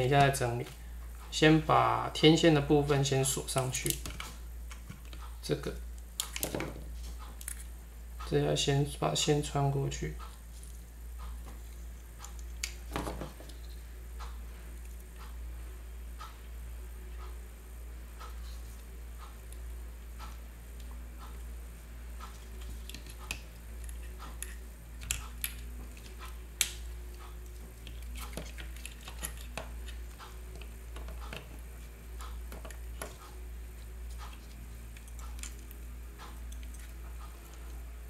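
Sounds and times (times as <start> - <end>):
hands clicking plastic parts: 22.2 - 31.6, 32.5 - 33.3, 34.1 - 37.7.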